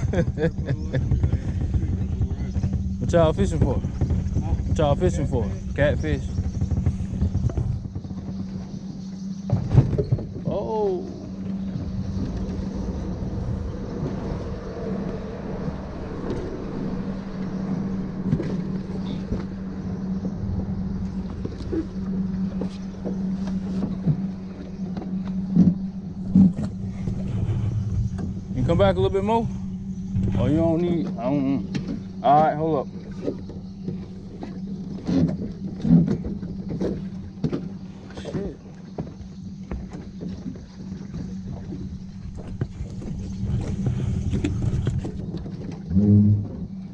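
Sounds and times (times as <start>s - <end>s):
electric trolling motor humming: 0.0s - 46.9s.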